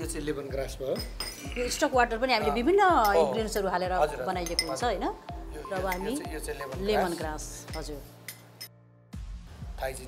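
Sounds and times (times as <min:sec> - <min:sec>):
metal spoon clinking glass bowl: 0:00.9 - 0:02.0, 0:02.9 - 0:05.0, 0:05.8 - 0:06.2, 0:07.6 - 0:08.7.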